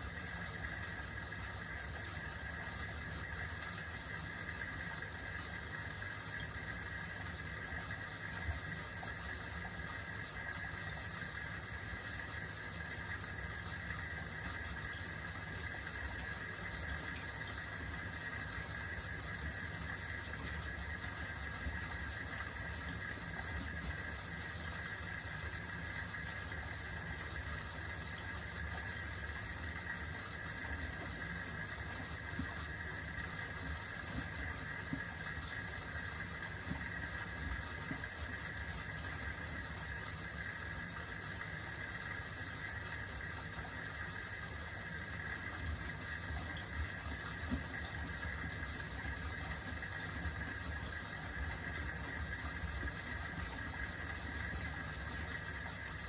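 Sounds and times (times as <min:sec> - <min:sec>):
washing machine motor rumble: 0:00.0 - 0:56.0.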